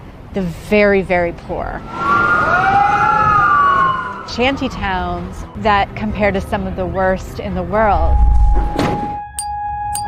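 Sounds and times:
emergency siren wailing: 1.8 - 5.6.

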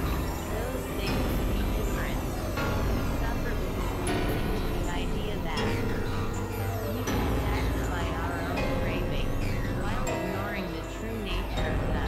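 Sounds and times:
gliding synthesizer tones: 0.0 - 12.0
low synthesizer drone: 0.0 - 12.0.

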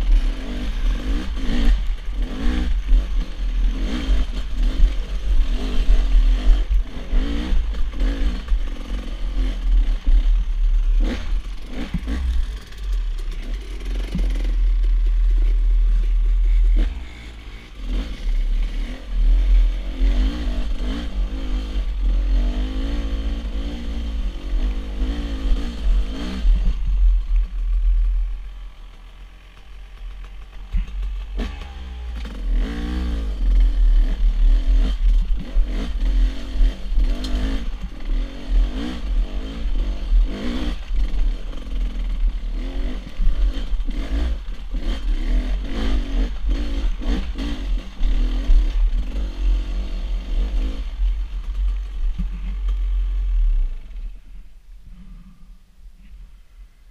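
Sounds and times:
dirt bike engine revving: 0.0 - 28.1, 29.5 - 51.5
low rumble on microphone: 46.3 - 56.9.

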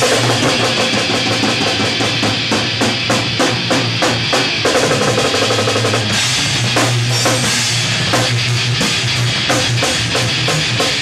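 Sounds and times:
distorted electric guitar: 0.0 - 11.0
drum kit with cymbals: 0.0 - 11.0.

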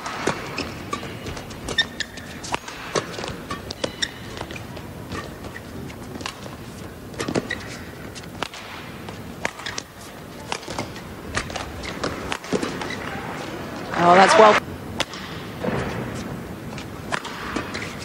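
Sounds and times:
rackets hitting shuttlecock: 0.0 - 13.6, 14.5 - 16.1, 16.8 - 18.0
indoor crowd hum: 0.0 - 18.0
shoes squeaking on court: 0.0 - 18.0.

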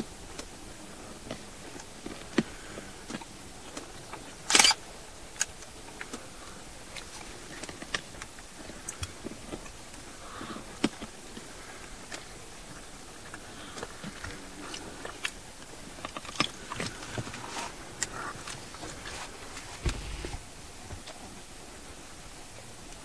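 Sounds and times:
dull thump: 19.8 - 20.4.

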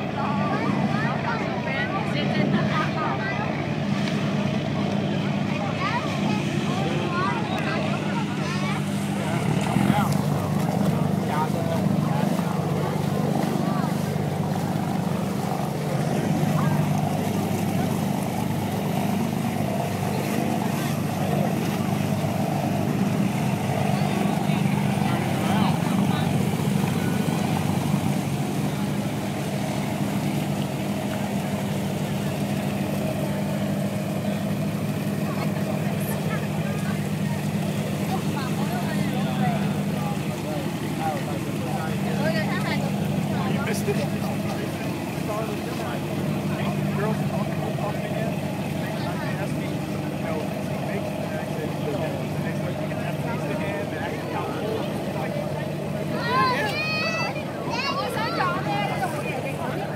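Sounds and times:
boat engine droning: 0.0 - 59.9
chatter of many voices: 0.0 - 59.9.

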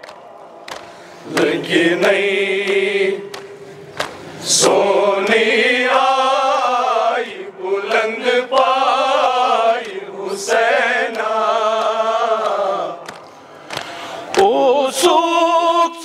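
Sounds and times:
men chanting in unison: 1.2 - 3.3, 4.4 - 13.1.

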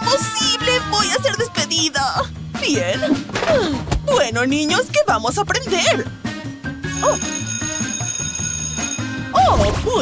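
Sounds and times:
background music: 0.0 - 10.0
bell ringing high tone: 6.9 - 9.2.

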